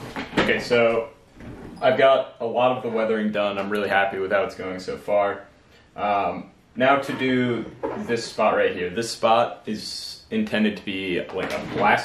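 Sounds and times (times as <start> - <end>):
man speaking: 0.4 - 1.2, 1.8 - 12.0.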